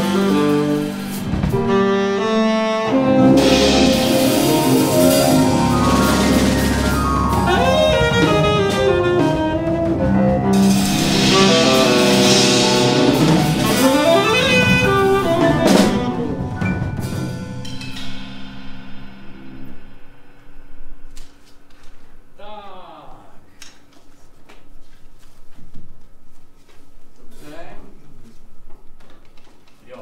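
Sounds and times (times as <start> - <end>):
saxophone: 0.0 - 17.0
electric bass guitar: 0.0 - 20.0
keyboard: 0.0 - 21.2
drum kit: 0.0 - 22.4.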